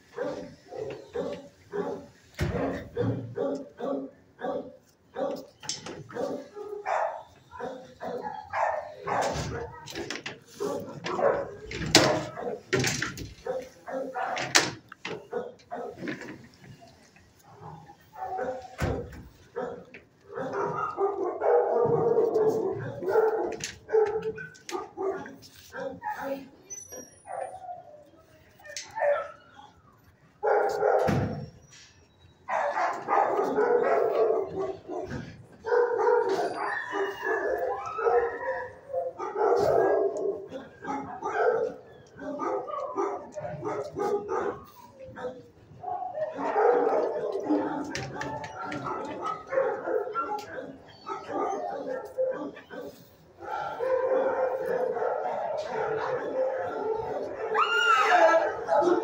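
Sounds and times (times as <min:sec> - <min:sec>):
dogs barking: 0:00.0 - 0:31.6, 0:32.3 - 0:59.0.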